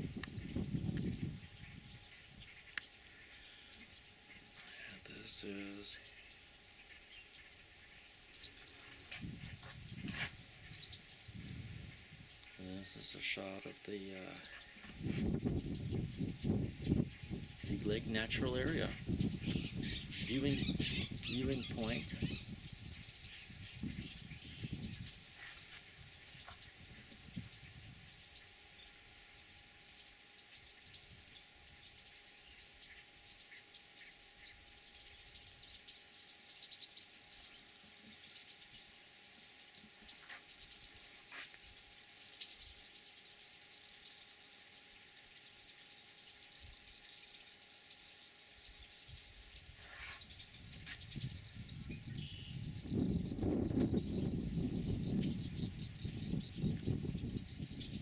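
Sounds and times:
distant bird calls: 0.0s - 58.0s
steady high hiss: 0.0s - 58.0s.

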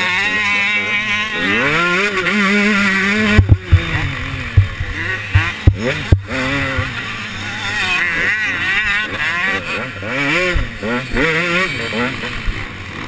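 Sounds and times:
motocross bike engine revving: 0.0s - 13.0s
sharp knocks: 3.3s - 7.0s.

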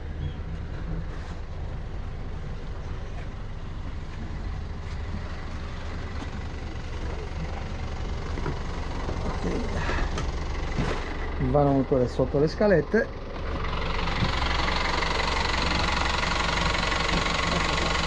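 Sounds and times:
diesel engine idling: 0.0s - 18.0s.

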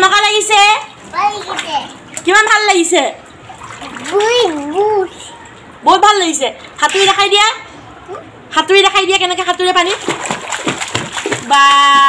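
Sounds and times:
child splashing water: 0.9s - 2.4s, 3.3s - 5.8s, 9.6s - 12.0s.

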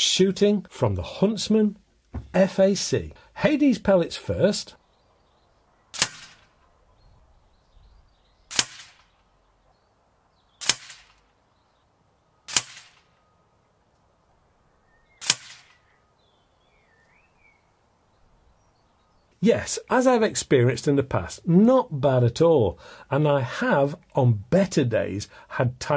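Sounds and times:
air rifle shots: 5.9s - 6.6s, 8.5s - 9.2s, 10.6s - 11.3s, 12.5s - 13.2s, 15.2s - 15.9s.

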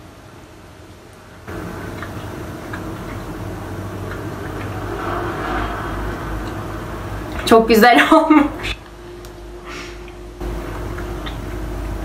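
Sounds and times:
steady hiss and low hum: 0.0s - 12.0s
chewing: 1.5s - 5.3s, 10.0s - 12.0s.

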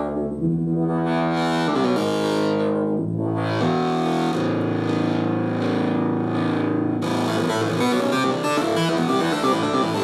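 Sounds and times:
distorted synthesizer chords: 0.0s - 10.0s.

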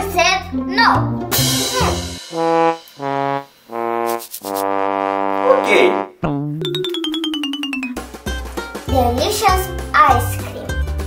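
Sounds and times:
sad trombone notes: 1.9s - 6.2s.

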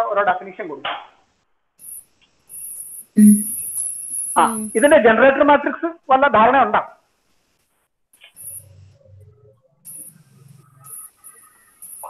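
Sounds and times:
faint high-pitched steady tone: 1.8s - 5.1s, 8.4s - 12.0s.

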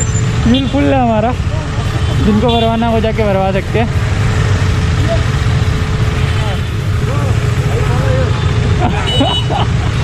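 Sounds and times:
motorcycle engines idling: 0.0s - 10.0s.

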